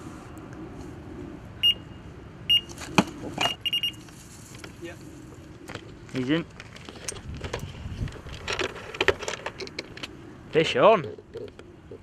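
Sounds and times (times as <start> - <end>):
electronic bite alarm bleeping: 1.6 - 2.7, 3.4 - 4.0.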